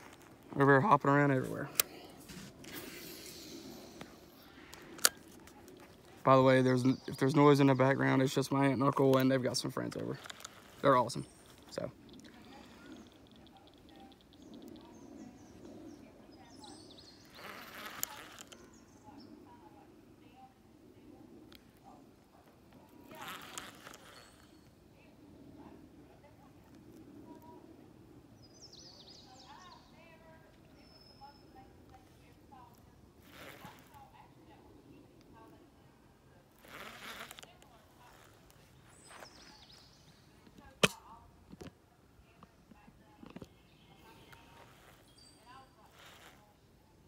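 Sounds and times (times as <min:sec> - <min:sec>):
distant chatter of voices: 0:00.0 - 0:47.0.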